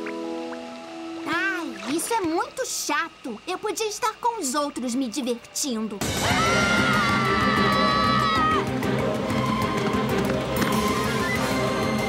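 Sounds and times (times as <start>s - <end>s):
loud background music: 6.0s - 12.0s
cartoon characters screaming: 6.1s - 8.6s.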